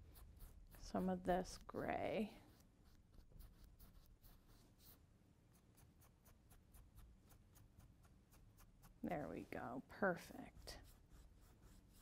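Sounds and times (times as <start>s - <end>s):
paintbrush scratching on canvas: 0.0s - 12.0s.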